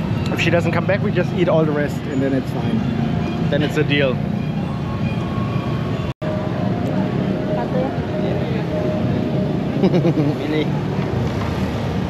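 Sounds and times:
murmur of distant voices: 0.0s - 12.0s
traffic rumble: 0.0s - 12.0s.

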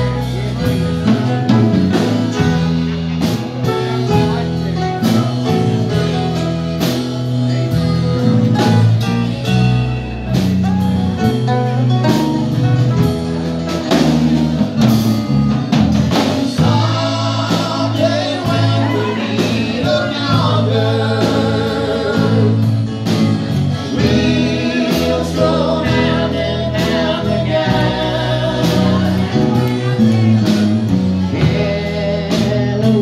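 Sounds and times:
drum kit: 0.0s - 33.0s
electric guitar: 0.0s - 33.0s
strummed acoustic guitars: 0.0s - 33.0s
man singing lead: 16.1s - 33.0s.

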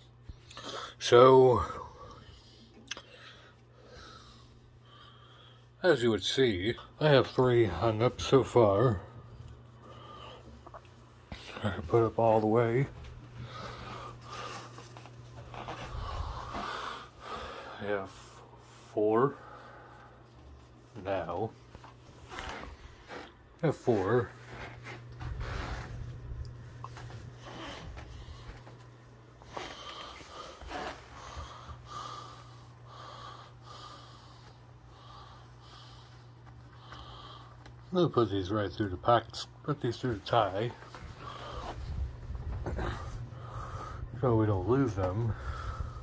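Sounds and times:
faint low hum: 0.0s - 46.0s
person breathing: 1.6s - 5.8s, 9.0s - 11.6s, 13.3s - 20.4s, 29.4s - 37.7s, 40.8s - 44.2s, 45.3s - 46.0s
soft handling rustling: 7.1s - 17.2s, 18.0s - 32.7s, 34.2s - 43.3s
person breathing through nose: 45.3s - 46.0s.

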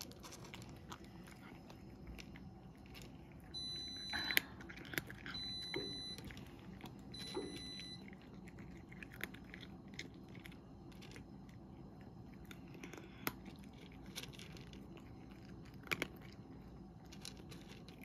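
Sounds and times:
cat crunching dry kibble: 0.0s - 7.3s, 8.0s - 18.0s.

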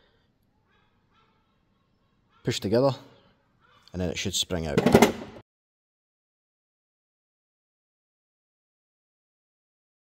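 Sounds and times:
man speaking: 2.4s - 3.1s, 3.9s - 5.0s.

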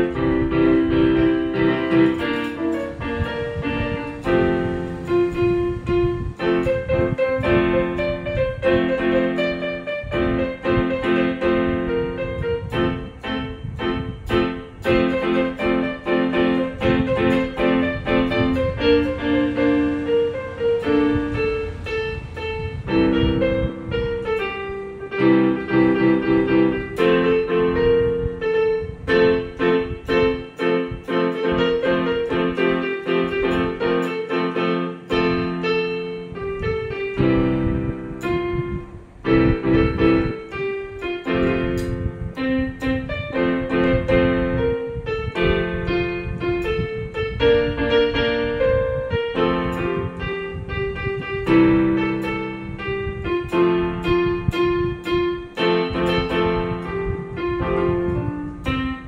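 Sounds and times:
electronic keyboard melody: 0.0s - 59.0s
held keyboard chords: 0.0s - 59.0s.

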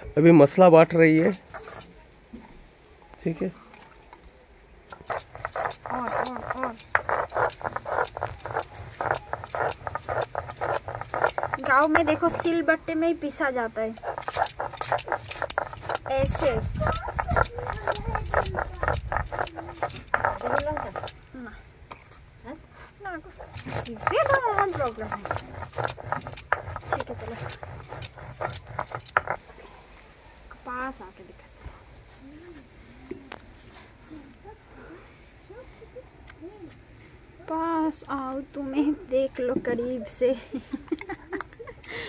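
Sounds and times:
grinding stone scraping: 1.2s - 2.0s, 4.9s - 21.3s, 23.2s - 29.4s
dog whining: 5.0s - 12.5s, 23.0s - 29.4s.

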